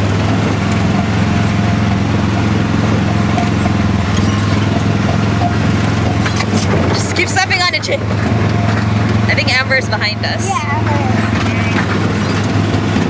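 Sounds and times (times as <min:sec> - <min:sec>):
small engine humming: 0:00.0 - 0:13.0.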